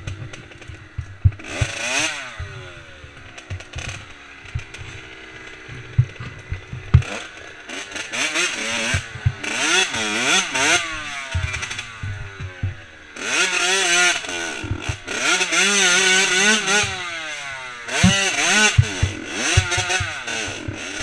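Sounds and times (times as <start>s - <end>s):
motorcycle engine revving: 0.0s - 21.0s
sharp knocks: 17.9s - 20.9s.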